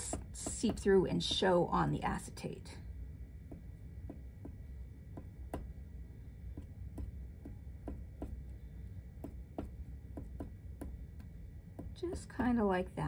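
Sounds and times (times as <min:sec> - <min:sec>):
glue bottle tip tapping paper: 0:06.5 - 0:08.4, 0:09.2 - 0:12.2.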